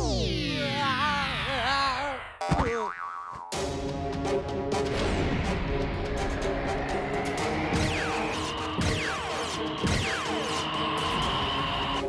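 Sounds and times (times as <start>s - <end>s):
springy boing: 2.4s - 3.6s
background music: 3.5s - 12.0s.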